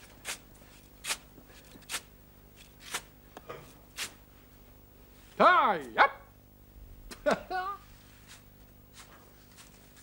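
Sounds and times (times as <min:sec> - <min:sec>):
man calling out: 0:05.4 - 0:06.3.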